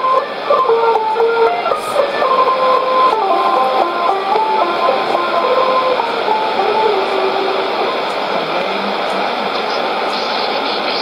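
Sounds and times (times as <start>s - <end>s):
melody on am radio: 0.0s - 8.6s
shortwave radio hiss: 0.0s - 11.0s.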